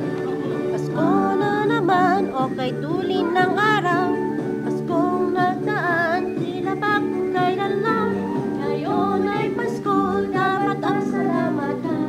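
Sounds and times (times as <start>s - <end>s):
woman singing with vibrato: 0.3s - 12.0s.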